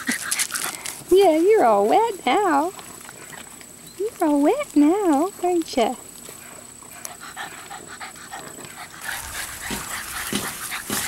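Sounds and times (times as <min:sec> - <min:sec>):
puppy panting: 0:00.0 - 0:01.0, 0:06.2 - 0:11.0
rustling with low thumps: 0:08.9 - 0:11.0.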